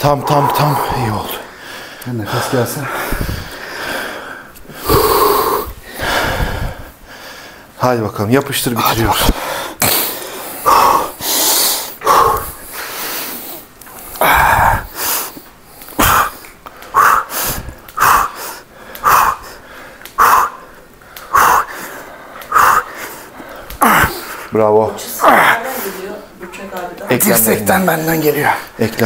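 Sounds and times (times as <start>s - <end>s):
man exhaling forcefully: 4.7s - 6.8s, 14.2s - 15.0s, 16.0s - 19.6s, 23.8s - 24.3s.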